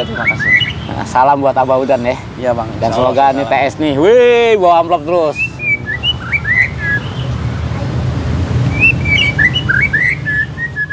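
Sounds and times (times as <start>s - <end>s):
bird singing whistled phrases: 0.0s - 0.9s, 5.3s - 7.3s, 8.7s - 10.9s.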